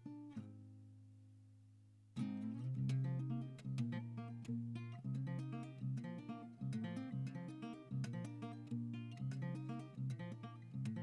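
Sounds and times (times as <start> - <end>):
fingerstyle acoustic guitar: 0.0 - 1.0, 2.2 - 11.0.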